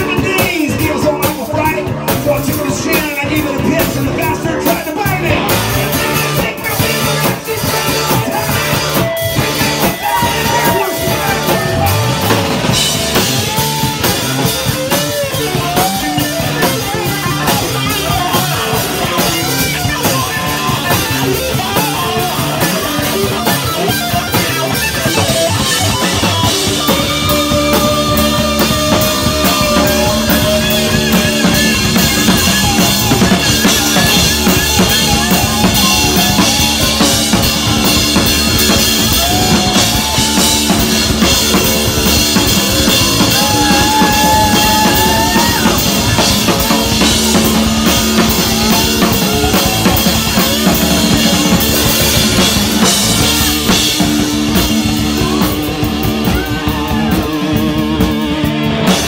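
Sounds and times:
live rock band playing: 0.0 - 59.0
bending electric guitar notes: 5.2 - 59.0.

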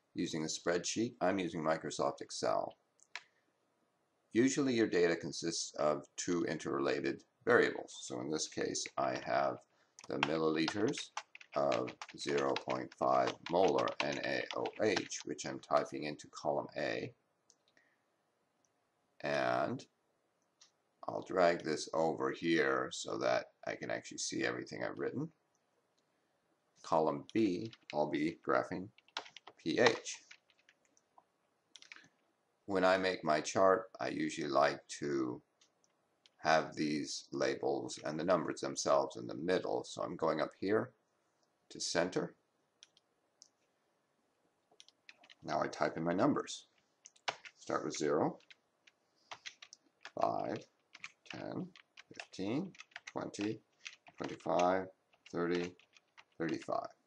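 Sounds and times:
computer mouse clicks: 10.0 - 15.2, 48.4 - 56.7.

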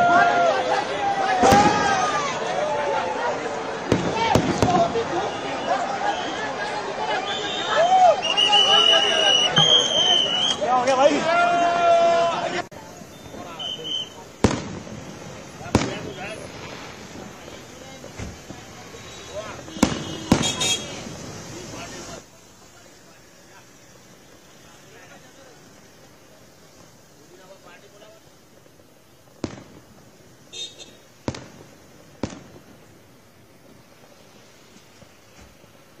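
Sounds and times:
fireworks banging with echo: 0.0 - 7.1, 8.3 - 12.0, 12.7 - 36.0
voices: 0.0 - 36.0.

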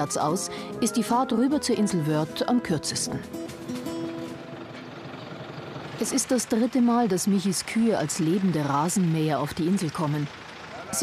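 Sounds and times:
tractor diesel engine running: 0.0 - 11.0.

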